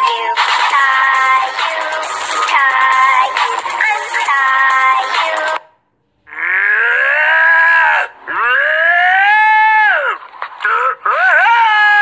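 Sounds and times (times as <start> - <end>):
music with processed singing: 0.0 - 5.6.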